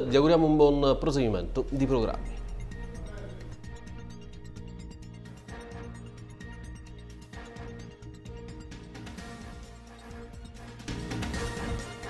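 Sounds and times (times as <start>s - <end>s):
news theme music: 0.0s - 11.9s.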